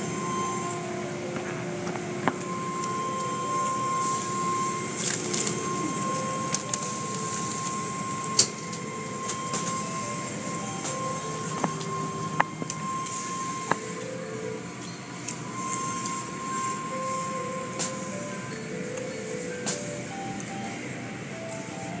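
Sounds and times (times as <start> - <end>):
machinery whine: 0.0 - 22.0.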